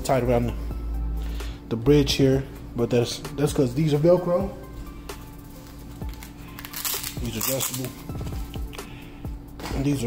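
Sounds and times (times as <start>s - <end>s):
background music: 0.0s - 10.0s
velcro strap ripping open: 6.0s - 8.2s.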